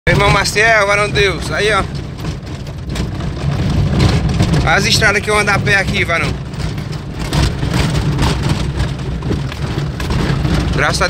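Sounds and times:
car engine rumble: 0.1 - 11.0
tyres and body knocking on bumps: 0.1 - 11.0.

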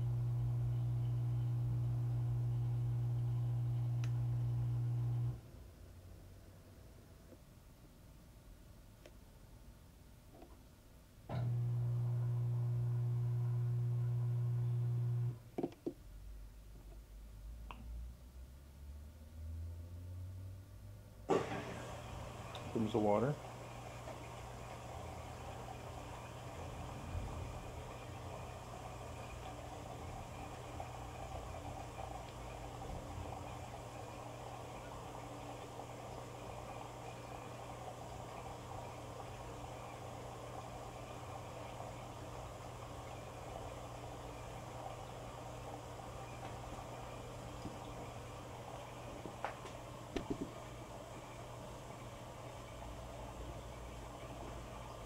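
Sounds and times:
steady low hum: 0.0 - 6.0, 11.3 - 15.4, 21.8 - 55.0
washer drum turning load: 21.3 - 22.9
water running into washer: 21.3 - 55.0.

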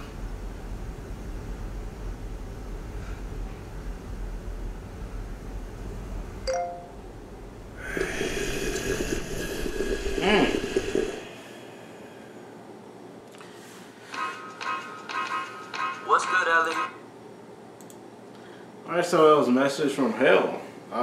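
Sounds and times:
low steady rumble: 0.0 - 13.3.

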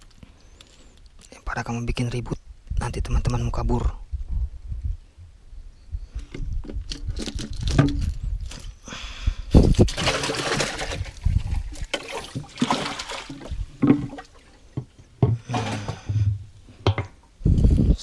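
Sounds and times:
water splashing and sloshing: 9.6 - 16.4.

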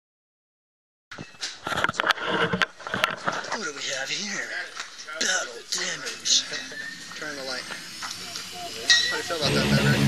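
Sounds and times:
camera knocks and scraping: 1.2 - 3.5
man talking: 3.5 - 7.8, 8.4 - 10.0.

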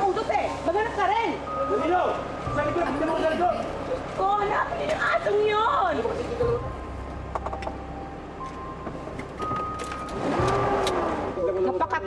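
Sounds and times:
background music tones: 0.0 - 12.0
car engine rumbling: 0.0 - 12.0.

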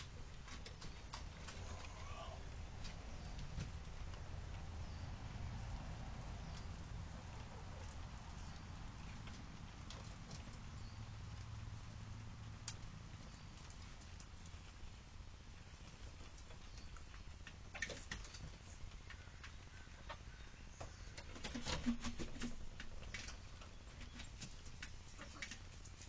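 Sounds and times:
low steady hum: 0.0 - 21.4
hens pecking and scratching: 0.0 - 26.0.

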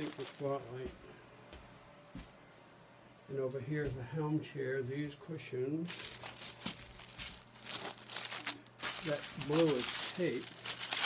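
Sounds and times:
plastic crinkling and crackling: 0.0 - 0.6, 5.9 - 11.0.

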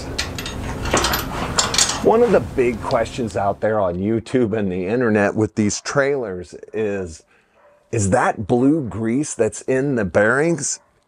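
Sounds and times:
metal frame clanking and rattling: 0.0 - 2.2.

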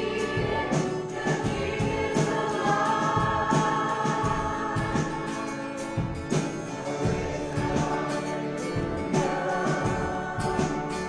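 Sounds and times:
person singing: 0.0 - 5.9, 6.7 - 11.0
live band playing: 0.0 - 11.0
steady drum beat: 0.0 - 11.0.

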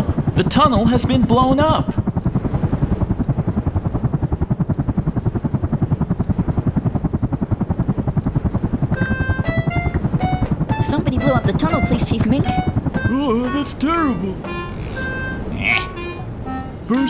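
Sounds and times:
helicopter rotor chopping: 0.0 - 17.0
short melody notes: 9.0 - 17.0.

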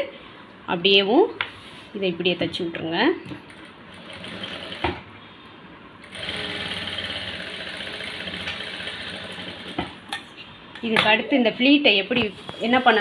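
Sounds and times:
sewing machine stitching: 4.0 - 5.0, 6.1 - 9.8.

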